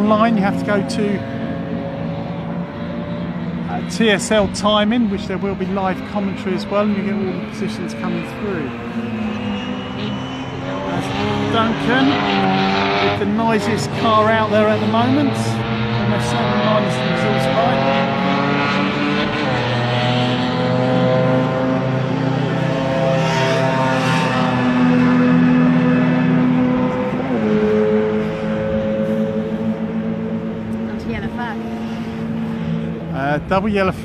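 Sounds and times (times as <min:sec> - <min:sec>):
racing car engines running hard: 0:00.0 - 0:34.0.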